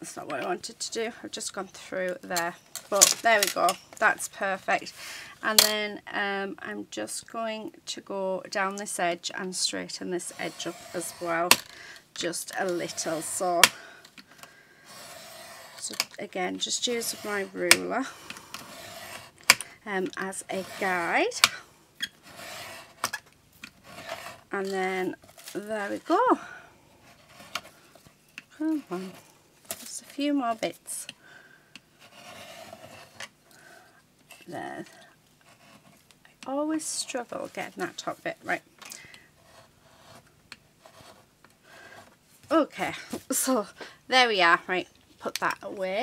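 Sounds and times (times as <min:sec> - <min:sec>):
knife blade scraping through card: 0:18.4 - 0:19.5, 0:22.2 - 0:23.1, 0:32.0 - 0:33.2.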